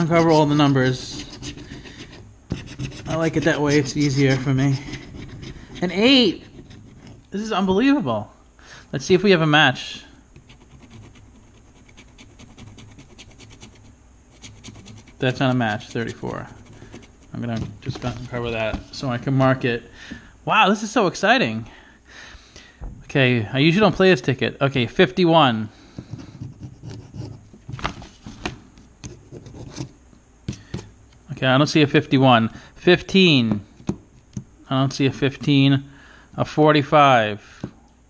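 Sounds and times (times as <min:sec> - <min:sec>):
scratcher scraping lottery ticket: 0:00.0 - 0:07.2, 0:14.4 - 0:18.6.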